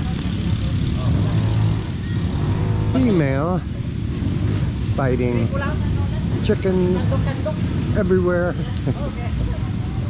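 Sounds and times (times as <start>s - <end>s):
small engine running: 0.0s - 3.6s.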